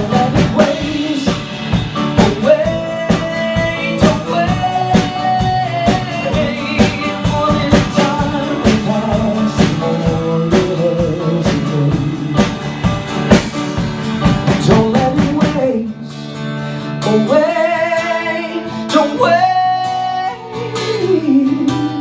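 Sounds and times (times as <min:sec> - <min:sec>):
man singing: 0:00.0 - 0:12.6, 0:14.4 - 0:22.0
acoustic guitar: 0:00.0 - 0:22.0
drum kit: 0:00.0 - 0:22.0
piano: 0:00.0 - 0:22.0.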